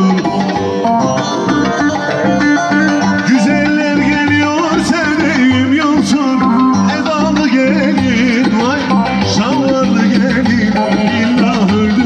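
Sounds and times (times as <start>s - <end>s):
folk dance tune on keyboard: 0.0s - 12.0s
plucked string instrument: 0.0s - 12.0s
steady drum rhythm: 0.0s - 12.0s.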